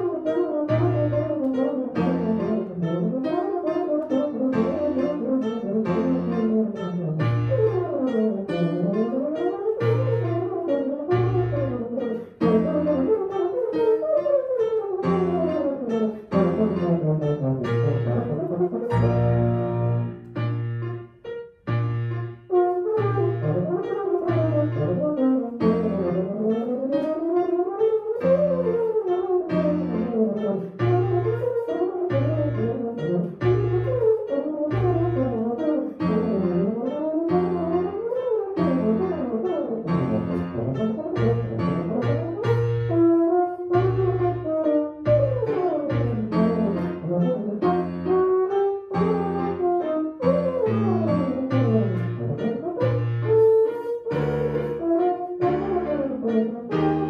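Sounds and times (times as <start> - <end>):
piano accompaniment: 0.0 - 57.0.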